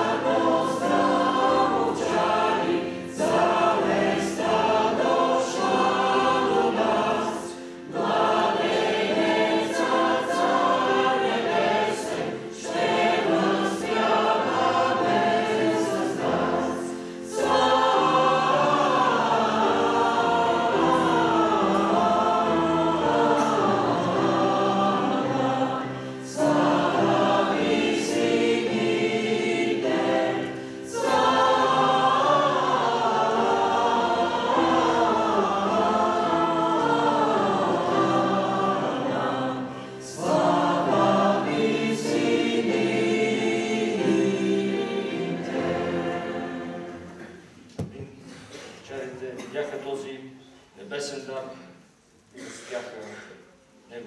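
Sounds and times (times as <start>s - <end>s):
church choir singing: 0.0s - 48.5s.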